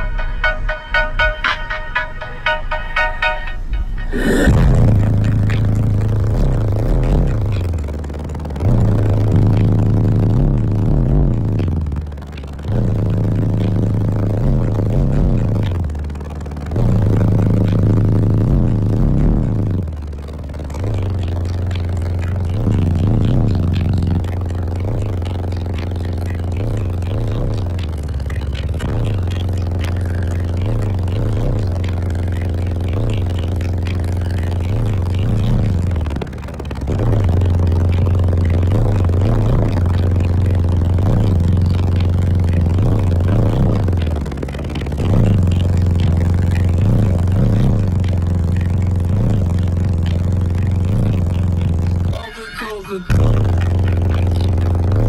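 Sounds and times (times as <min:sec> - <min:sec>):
bass-heavy music through car subwoofers: 0:00.0 - 0:55.0.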